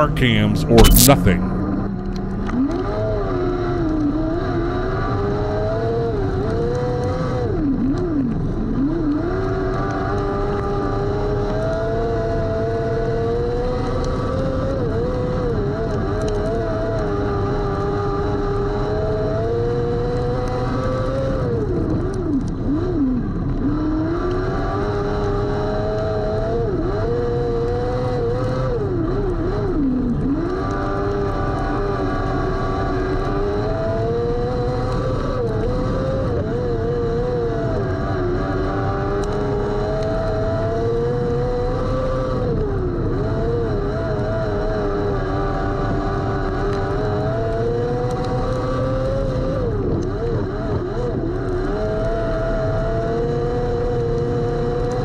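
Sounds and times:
racing car engine: 0:00.0 - 0:55.0.

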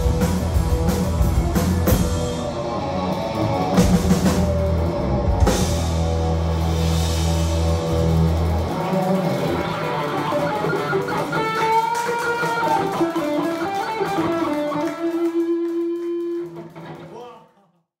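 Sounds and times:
rock band ending a song: 0:00.0 - 0:17.1
electric guitar notes and bends: 0:00.0 - 0:17.2.

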